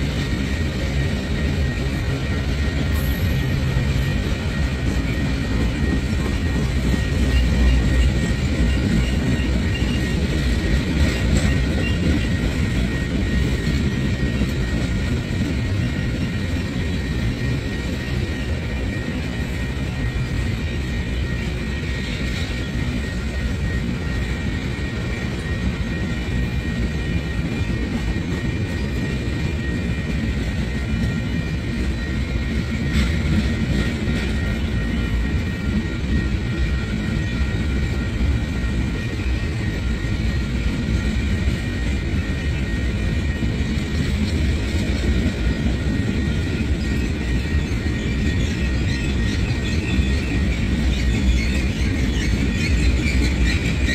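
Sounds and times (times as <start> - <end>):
train wheels rumbling on rails: 0.0 - 53.9.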